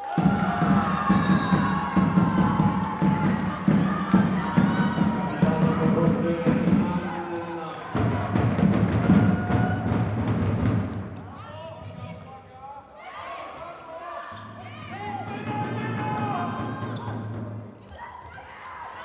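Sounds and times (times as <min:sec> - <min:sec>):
rapid knocks or claps: 0:00.0 - 0:11.3.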